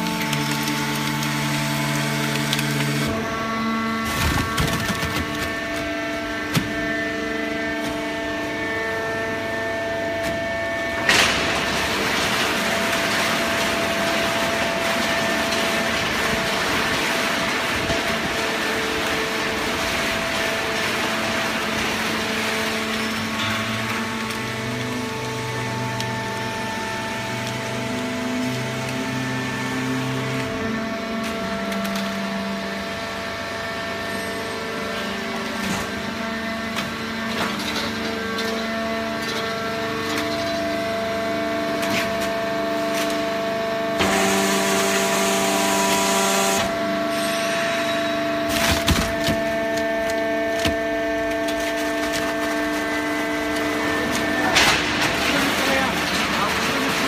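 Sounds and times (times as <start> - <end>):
baler machine drone: 0.0 - 57.0.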